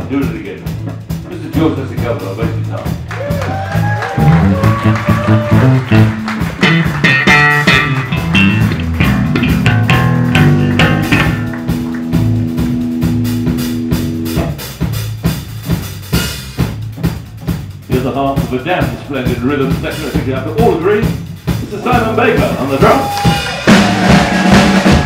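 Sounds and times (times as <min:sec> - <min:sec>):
light drums: 0:00.0 - 0:25.0
electric bass guitar solo: 0:02.8 - 0:15.1.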